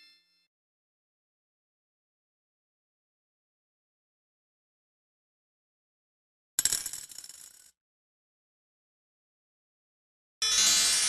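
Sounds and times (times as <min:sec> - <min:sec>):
coin clinking in piggy bank: 0:06.6 - 0:07.7.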